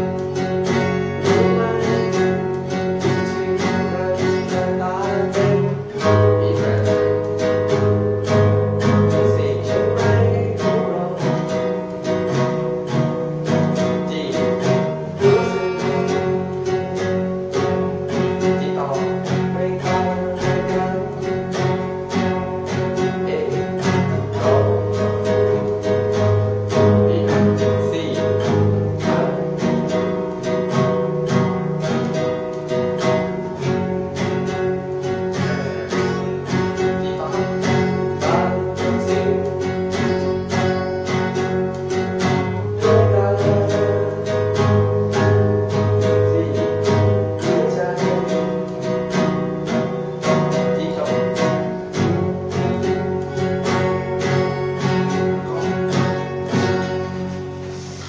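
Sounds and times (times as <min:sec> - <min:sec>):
fingerstyle acoustic guitar: 0:00.0 - 0:58.0.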